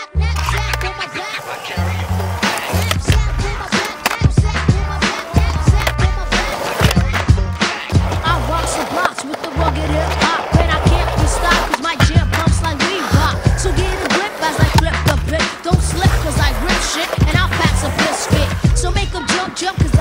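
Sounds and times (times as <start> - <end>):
music with bass and vocals: 0.0 - 20.0
skateboard rolling on concrete: 0.0 - 20.0
skateboard clacks: 0.4 - 20.0.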